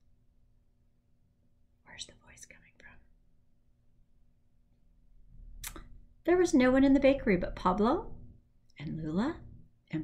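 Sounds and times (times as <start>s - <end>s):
woman whispering: 1.8s - 3.2s.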